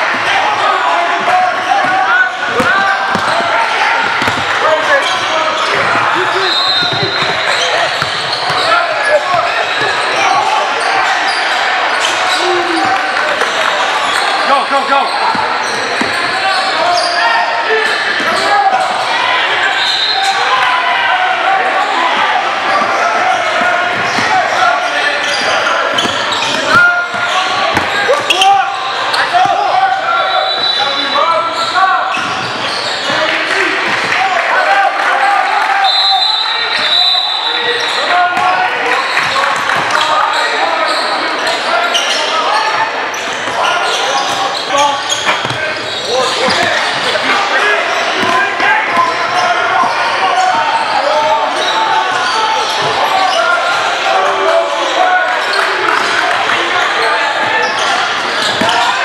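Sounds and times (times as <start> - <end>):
indistinct voices echoing: 0.0 - 59.0
basketball bouncing on hardwood: 4.1 - 4.5.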